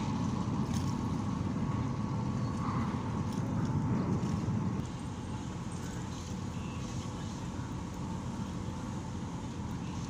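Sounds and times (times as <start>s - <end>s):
ship engines rumbling: 0.0s - 10.0s.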